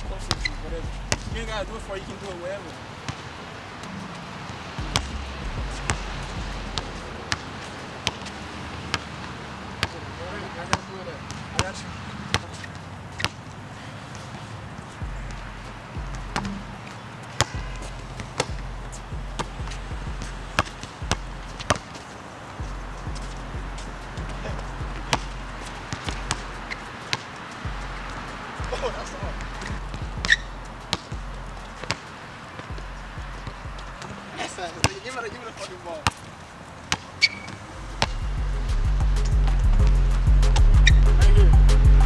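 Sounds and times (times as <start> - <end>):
music with deep bass line: 0.0 - 2.1, 4.8 - 7.2, 15.0 - 16.8, 17.6 - 21.7, 22.6 - 26.8, 27.7 - 31.8, 37.8 - 42.0
basketball bouncing on hard court: 0.3 - 1.6, 4.8 - 9.1, 9.8 - 10.0, 10.7 - 13.4, 15.0 - 34.2, 36.0 - 36.3, 36.9 - 38.4.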